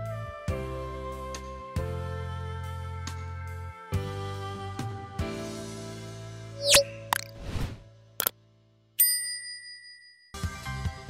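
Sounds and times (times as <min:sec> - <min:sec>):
rising swoosh: 0:06.6 - 0:07.8
bell ding: 0:09.0 - 0:10.5.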